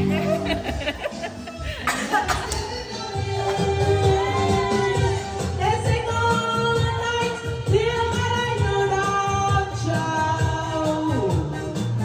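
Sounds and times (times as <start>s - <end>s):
amplified backing track: 0.0s - 12.0s
woman singing into a microphone: 2.0s - 11.8s.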